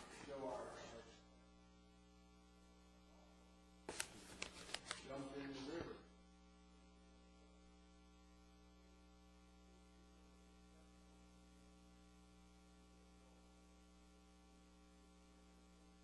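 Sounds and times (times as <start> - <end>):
faint electrical mains hum: 0.0 - 16.0.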